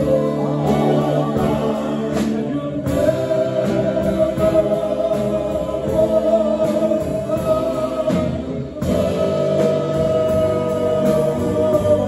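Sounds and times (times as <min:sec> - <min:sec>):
live band music: 0:00.0 - 0:12.0
men singing in harmony: 0:00.0 - 0:12.0.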